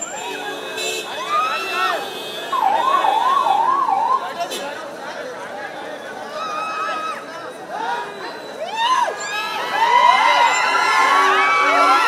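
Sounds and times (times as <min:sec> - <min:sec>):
crowd shouting: 0:00.0 - 0:04.2, 0:06.1 - 0:12.0
warbling siren: 0:02.6 - 0:04.3.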